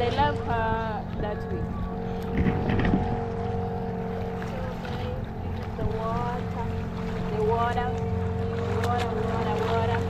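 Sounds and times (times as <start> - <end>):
boat engine droning: 0.0 - 10.0
water splashing along hull: 0.0 - 10.0.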